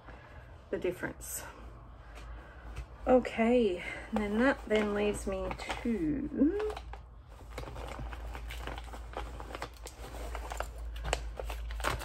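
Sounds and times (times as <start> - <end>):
low steady hum: 0.0 - 12.0
rustling: 1.9 - 12.0.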